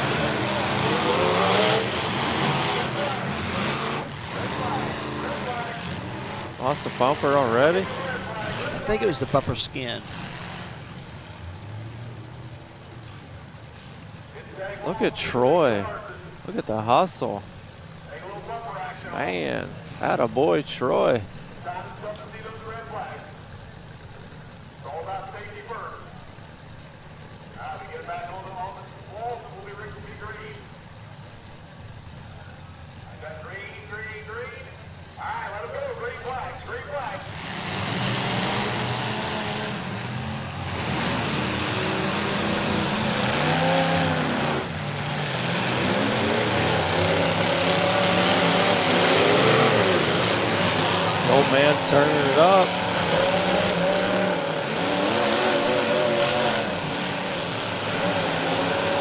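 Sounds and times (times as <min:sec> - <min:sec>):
car engines idling: 0:00.0 - 0:59.0
car engines revving hard: 0:00.0 - 0:59.0.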